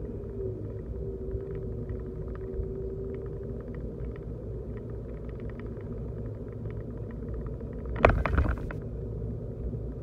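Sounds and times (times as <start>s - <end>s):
faint light ticks: 0.0s - 8.8s
car engine and tyre rumble: 0.0s - 10.0s
steady hum: 0.0s - 10.0s.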